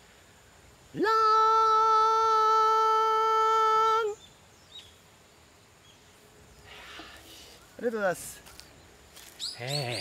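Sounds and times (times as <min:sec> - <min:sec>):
faint chirps: 0:03.9 - 0:10.0.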